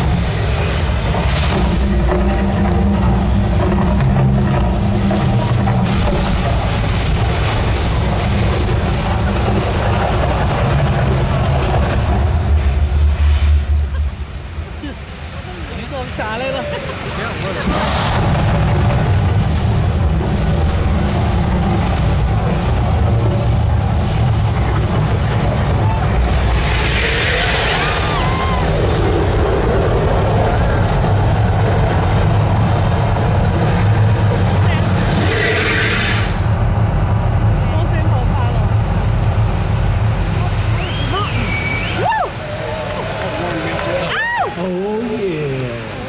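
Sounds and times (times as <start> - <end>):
deep rumble: 0.0 - 15.8, 17.3 - 43.9
flames hissing: 17.4 - 22.4
whooshing bursts: 17.4 - 36.6.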